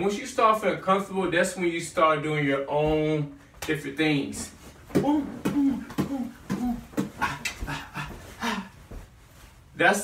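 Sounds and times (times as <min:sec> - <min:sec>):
man breathy vocal puffs and grunts: 0:05.1 - 0:08.9.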